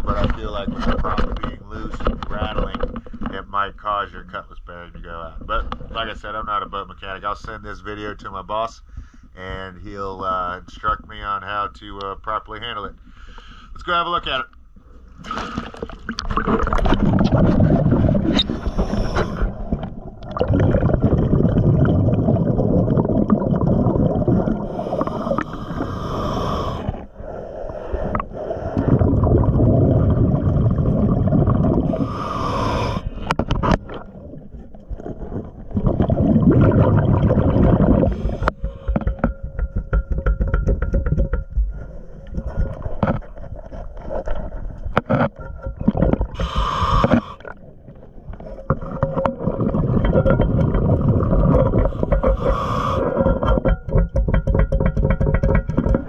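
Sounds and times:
underwater clicks and scrapes: 0.0 - 3.7, 5.4 - 6.2, 14.5 - 21.9, 24.3 - 29.6, 30.5 - 56.0
diver breathing through regulator: 13.0 - 13.8, 17.5 - 19.9, 24.3 - 29.6, 31.7 - 33.4, 37.5 - 39.3, 46.2 - 47.6, 51.2 - 53.6.

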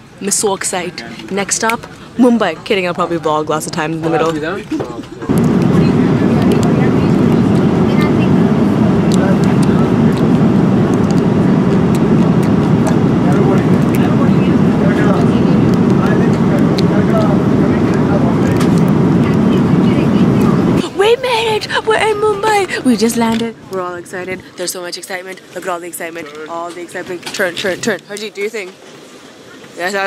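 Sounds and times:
jet airliner cabin roar: 5.2 - 24.7.

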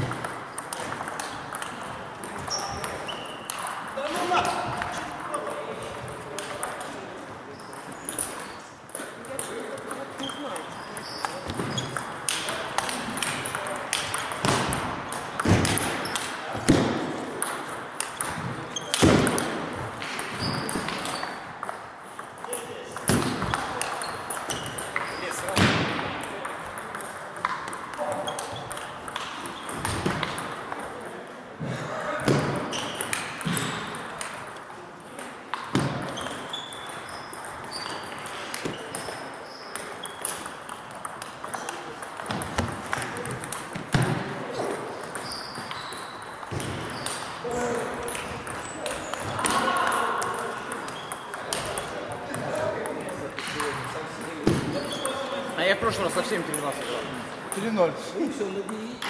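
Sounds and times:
table tennis ball clicking: 0.0 - 4.0, 17.4 - 19.5, 26.2 - 31.1, 32.8 - 43.9, 48.0 - 55.2.

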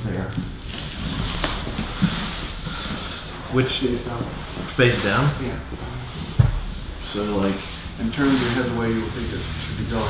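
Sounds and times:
clothing rustling and shuffling: 0.2 - 10.0
soft thump: 6.4 - 6.7.

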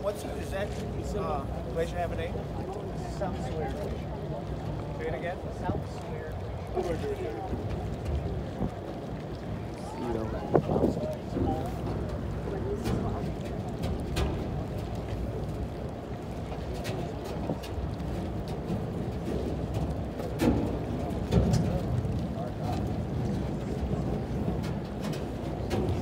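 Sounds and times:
boat engine rumble: 0.0 - 26.0
faint passengers' voices: 0.0 - 26.0
wind on microphone: 2.4 - 26.0.

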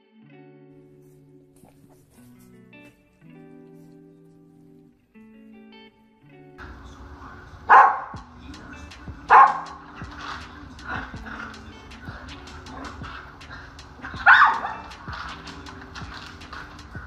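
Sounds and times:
background music: 5.8 - 17.0
dog barking: 7.7 - 8.2, 9.3 - 9.8, 14.0 - 15.1.

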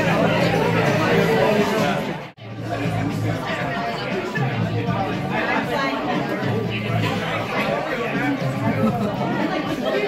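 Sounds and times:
hubbub of voices: 0.0 - 10.0.

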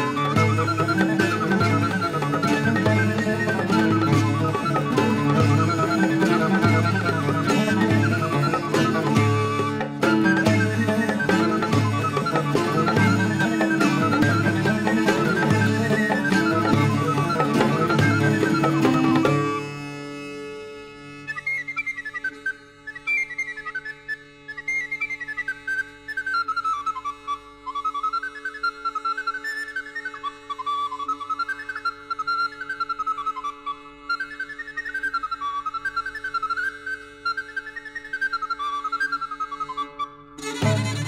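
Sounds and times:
high flute melody: 0.0 - 20.3, 21.1 - 41.0.

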